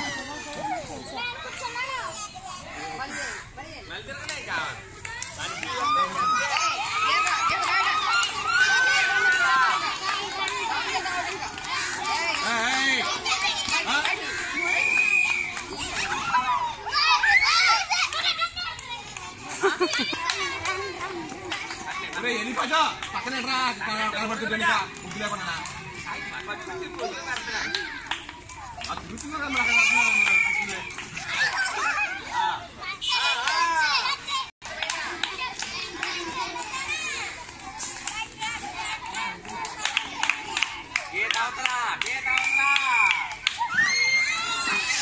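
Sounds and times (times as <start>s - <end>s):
children shouting excitedly: 0.0s - 3.7s, 4.9s - 45.0s.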